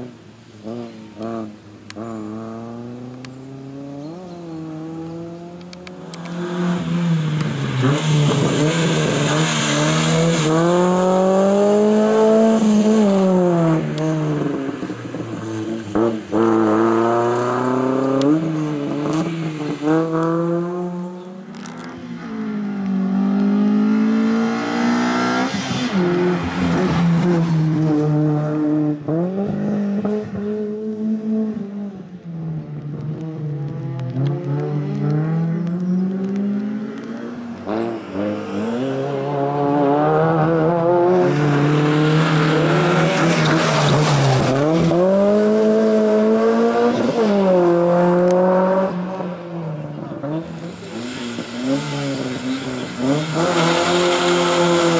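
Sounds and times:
race car engine revving: 0:00.6 - 0:32.1, 0:32.8 - 0:54.9.

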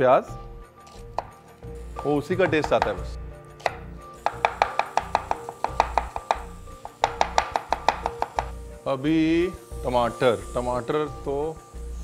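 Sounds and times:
knife chopping on wooden board: 0:00.9 - 0:01.4, 0:02.4 - 0:08.6.

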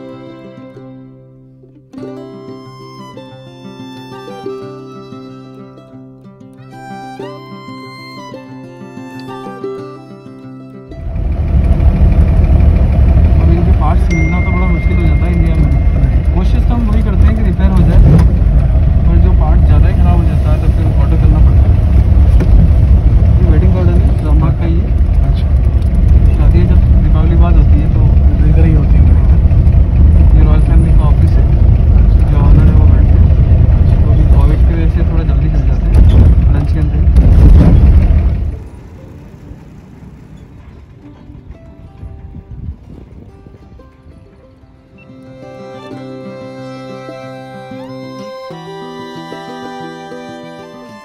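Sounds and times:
car engine and road rumble: 0:10.8 - 0:51.0
people talking: 0:13.3 - 0:18.4, 0:19.0 - 0:21.9, 0:23.3 - 0:25.5, 0:26.2 - 0:29.5, 0:30.3 - 0:33.3, 0:33.9 - 0:37.2.

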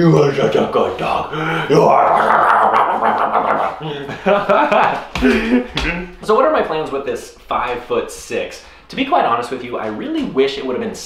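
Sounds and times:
man talking to dog: 0:05.8 - 0:11.0.

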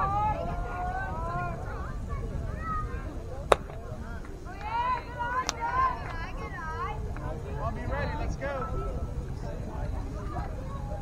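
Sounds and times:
baseball smack: 0:03.5 - 0:03.9.

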